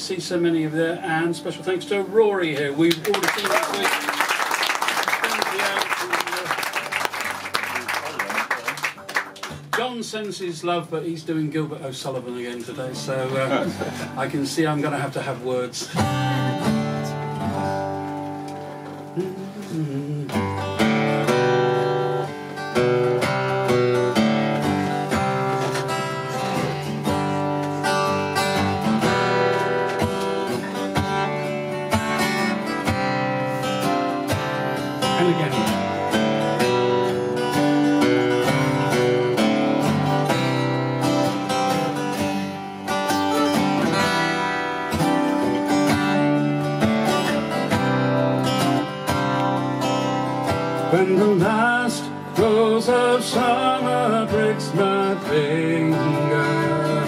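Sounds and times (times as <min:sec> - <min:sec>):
strummed acoustic guitars: 0:00.0 - 0:57.0.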